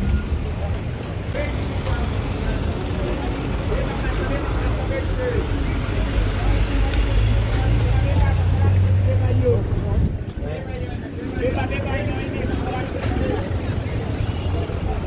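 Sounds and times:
passers-by's voices: 0.0s - 15.0s.

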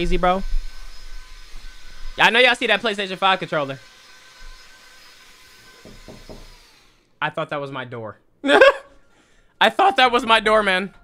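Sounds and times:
quick knocks: 5.8s - 6.5s.

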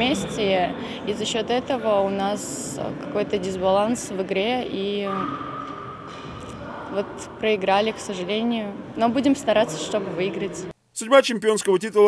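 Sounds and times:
young woman speaking: 0.0s - 5.4s, 6.6s - 10.7s
hall background noise: 0.0s - 11.1s.

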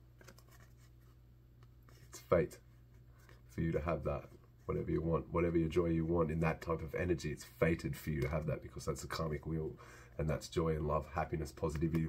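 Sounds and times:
cards rustling: 0.1s - 4.6s.

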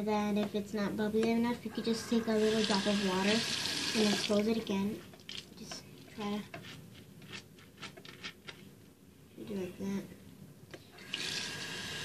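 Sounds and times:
water running into basin: 2.3s - 5.6s, 11.0s - 12.0s.

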